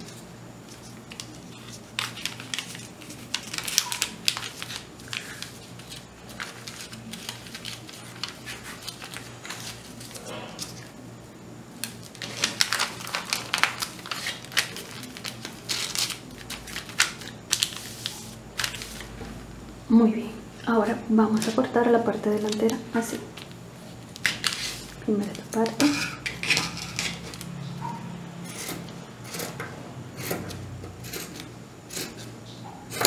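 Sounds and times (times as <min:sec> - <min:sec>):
paper rustling and crinkling: 0:00.0 - 0:10.9, 0:11.8 - 0:19.3, 0:22.3 - 0:27.5.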